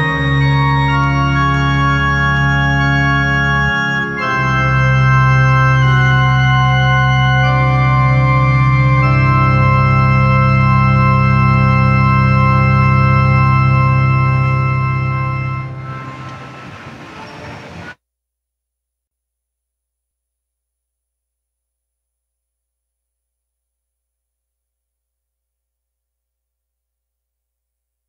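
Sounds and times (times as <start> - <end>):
organ playing sustained chords: 0.0 - 17.5.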